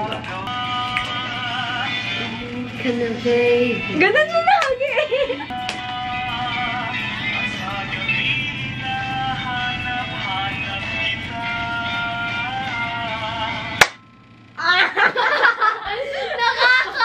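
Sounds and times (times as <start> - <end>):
pop song playing: 0.0 - 13.9.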